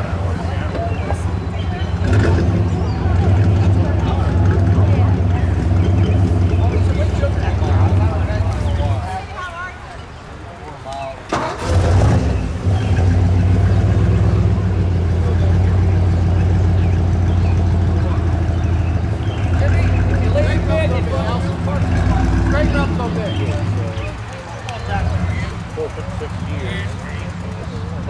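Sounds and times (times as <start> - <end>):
car engine starting and idling: 0.1 - 9.0, 11.3 - 28.0.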